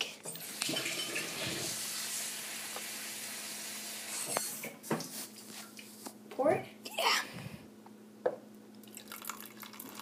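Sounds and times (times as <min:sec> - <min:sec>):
water running: 0:00.3 - 0:04.4, 0:08.8 - 0:10.0.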